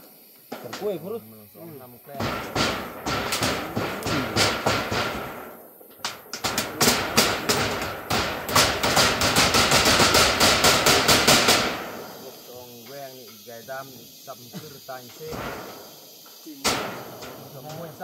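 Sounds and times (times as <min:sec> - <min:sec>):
hammer nailing metal roofing: 0:02.1 - 0:12.1, 0:16.6 - 0:18.0.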